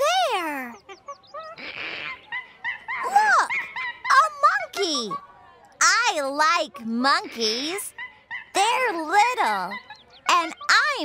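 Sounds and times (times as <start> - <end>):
monkey chattering: 0.0 - 5.2, 6.4 - 11.0.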